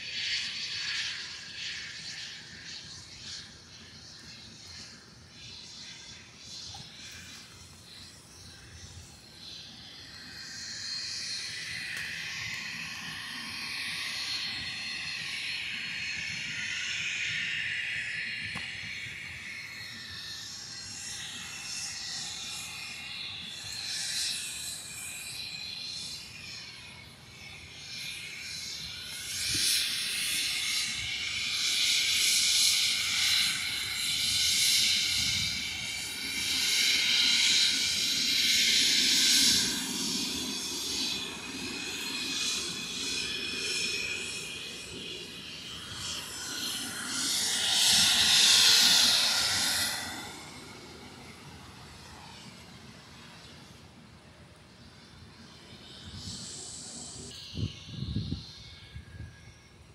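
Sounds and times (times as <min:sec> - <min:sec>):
jet engines whining: 0:00.0 - 0:59.6.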